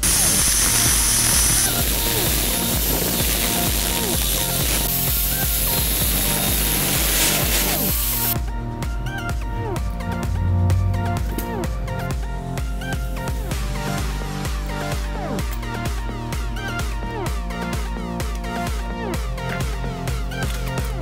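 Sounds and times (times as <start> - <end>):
angle grinder cutting steel: 0.0 - 8.4
electronic dance music: 0.0 - 21.0.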